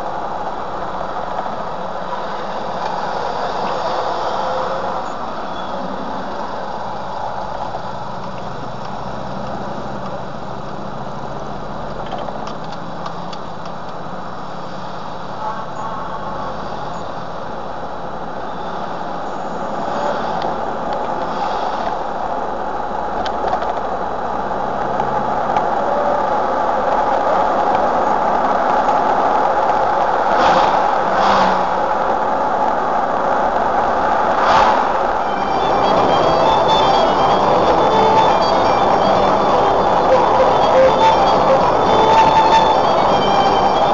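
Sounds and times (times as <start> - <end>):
car engine and road noise: 0.0 - 43.9.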